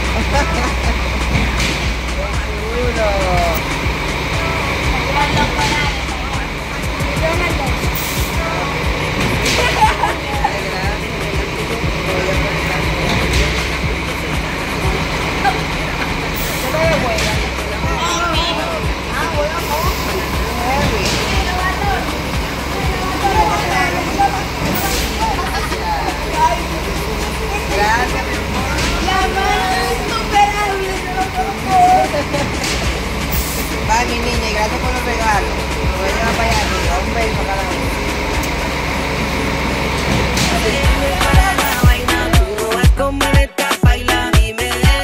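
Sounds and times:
girls chattering and squealing: 0:00.0 - 0:43.2
steady low hum: 0:00.0 - 0:43.2.

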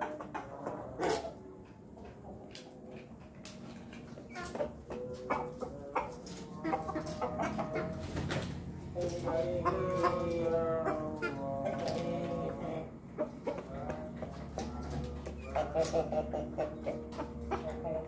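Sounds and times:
chickens clucking: 0:00.0 - 0:18.0.

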